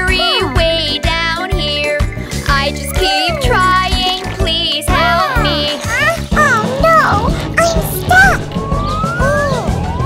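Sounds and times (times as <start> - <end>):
children's song backing music: 0.0 - 10.0
high cartoon voice calling: 4.9 - 9.6.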